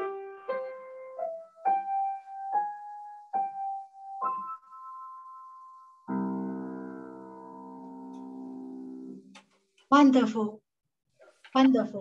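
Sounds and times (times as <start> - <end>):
piano chord ringing: 0.0 - 9.3.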